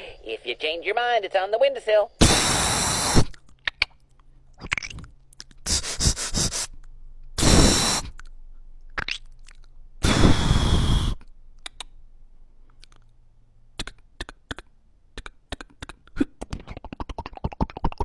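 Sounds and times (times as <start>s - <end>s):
beatboxing hissing bursts: 2.2s - 3.4s, 5.6s - 6.8s, 7.4s - 8.2s, 10.0s - 11.8s
lip clicks and pops: 2.3s - 5.7s, 6.8s - 10.2s, 11.1s - 12.0s, 12.6s - 13.2s, 13.8s - 18.0s.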